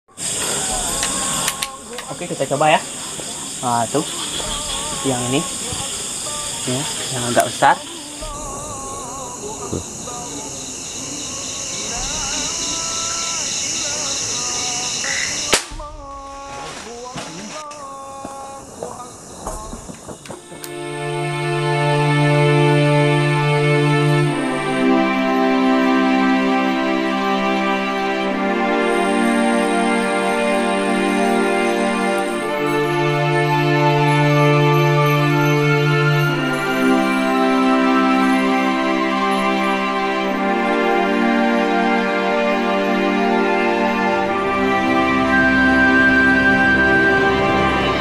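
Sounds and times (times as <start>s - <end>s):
background music: 0.0s - 16.9s, 20.4s - 48.0s
chorus of night insects: 0.1s - 48.0s
sharp clicks: 0.9s - 2.1s.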